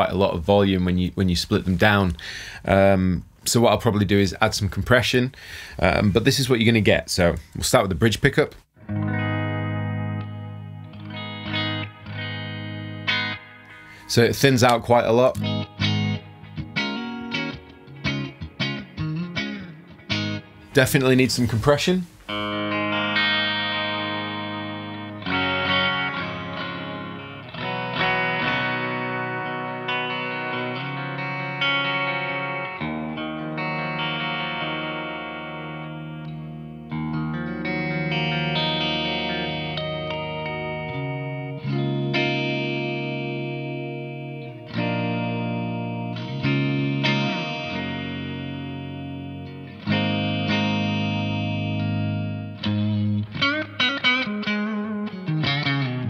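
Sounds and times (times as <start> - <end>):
clean electric guitar chords ringing: 8.8 - 20.8, 22.3 - 56.0.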